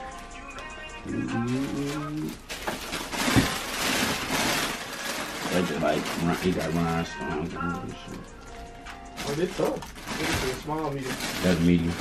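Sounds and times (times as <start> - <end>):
plastic packaging crinkling: 1.3 - 12.0.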